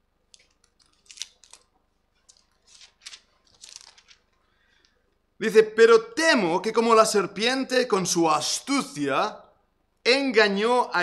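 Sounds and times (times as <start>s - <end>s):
book pages rustling: 0.3s - 4.4s.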